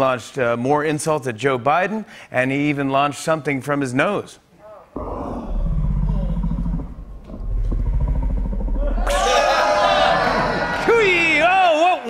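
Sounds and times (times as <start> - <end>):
steady low rumble: 5.0 - 9.5.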